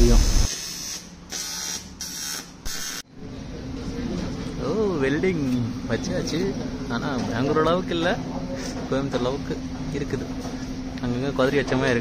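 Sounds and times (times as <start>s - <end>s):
electric arc welding: 0.0s - 3.0s.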